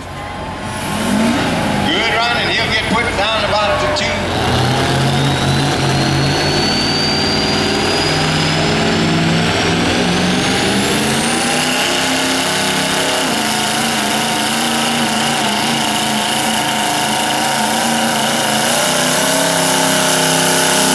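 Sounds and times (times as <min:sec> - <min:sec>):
diesel truck engine under load: 0:00.0 - 0:20.9
turbocharger whistle rising: 0:00.6 - 0:20.9.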